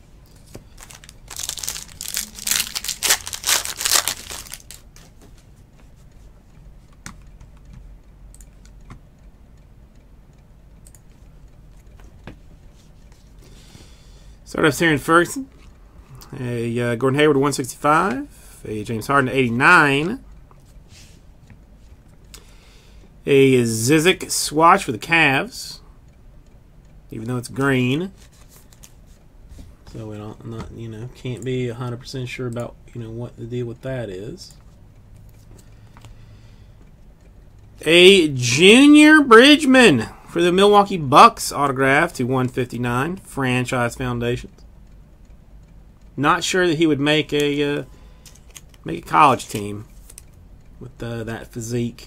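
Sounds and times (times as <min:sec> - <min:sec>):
card rustling in plastic sleeve: 0:00.3 - 0:05.5, 0:28.1 - 0:29.2.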